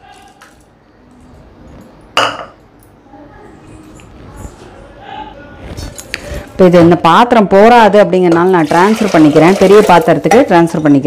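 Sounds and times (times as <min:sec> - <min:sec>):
clink against pot: 0:02.2 - 0:02.6.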